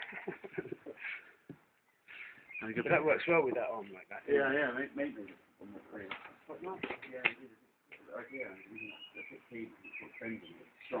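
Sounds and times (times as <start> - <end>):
indistinct talking voices: 2.2 - 11.0.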